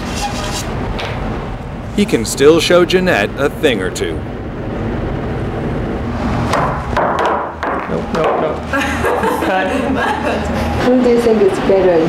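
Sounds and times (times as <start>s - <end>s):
low steady background noise: 0.8s - 6.1s
pool balls clicking: 6.6s - 8.5s.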